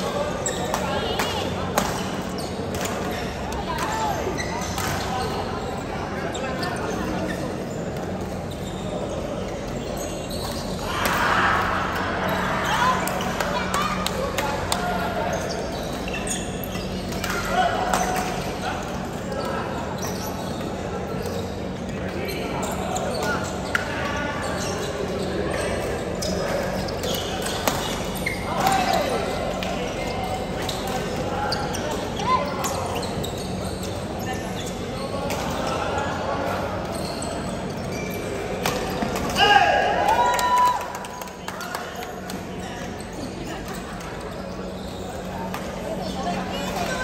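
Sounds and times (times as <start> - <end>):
shoes squeaking on court floor: 0.0 - 11.3, 12.2 - 39.4, 41.3 - 47.0
hubbub of voices: 0.0 - 47.0.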